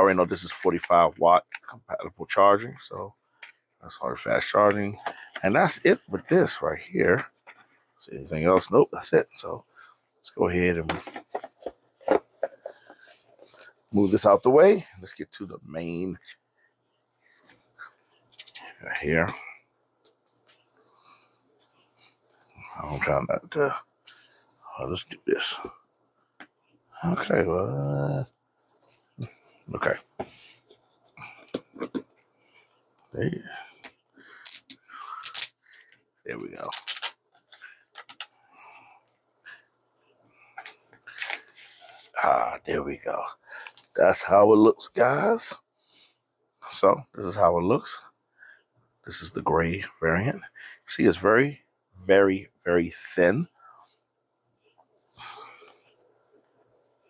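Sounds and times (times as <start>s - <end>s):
paper packaging rustling: 10.9s - 13.2s.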